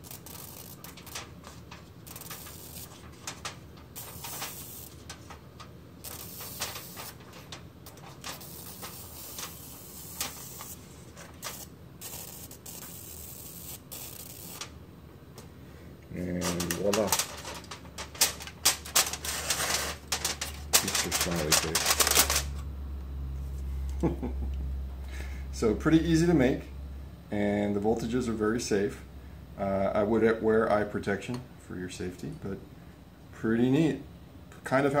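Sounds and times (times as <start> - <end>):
pencil lead sparking on foil: 0.0 - 14.7, 16.4 - 22.6.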